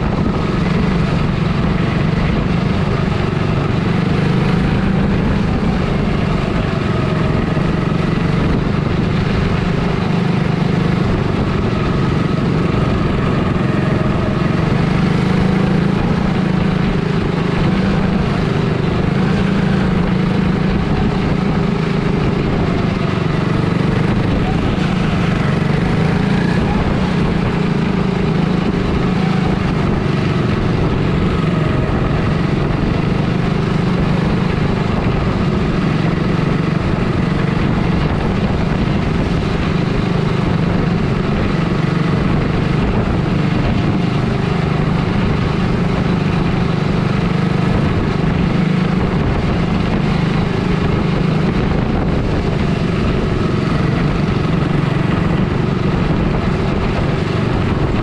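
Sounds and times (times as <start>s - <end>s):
small race car engine running: 0.0s - 58.0s.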